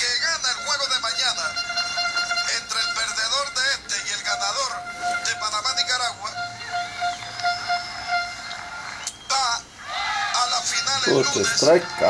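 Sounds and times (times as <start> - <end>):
steady horn-like tone: 0.5 - 9.0
ballpark crowd noise through tv speaker: 5.4 - 12.0.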